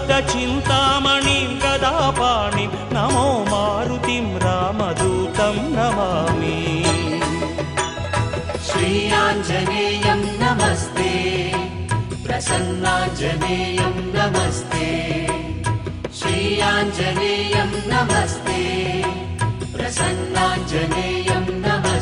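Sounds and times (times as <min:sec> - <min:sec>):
melodic instruments over a beat: 0:00.0 - 0:11.2
devotional chant singing: 0:00.0 - 0:15.6, 0:16.2 - 0:22.0.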